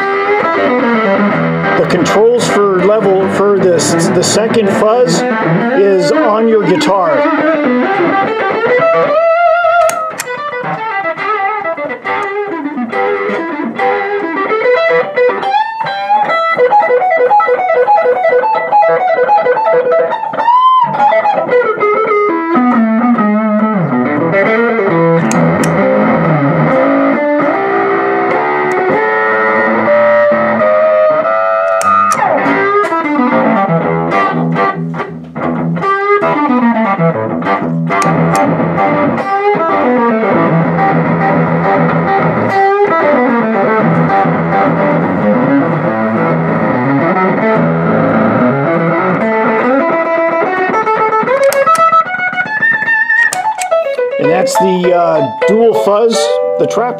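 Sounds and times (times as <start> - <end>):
fuzzed electric guitar notes: 0.0 - 56.9.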